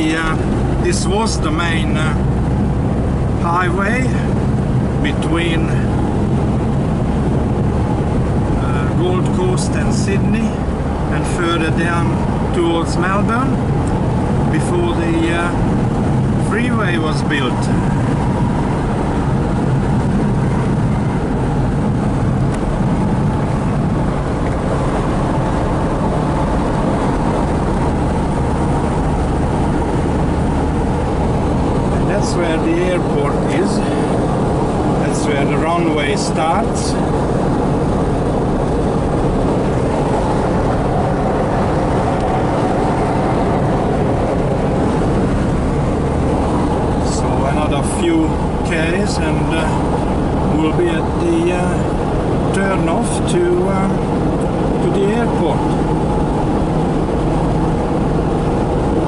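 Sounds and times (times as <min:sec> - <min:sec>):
engine cabin drone: 0:00.0 - 0:59.0
road noise: 0:00.0 - 0:59.0.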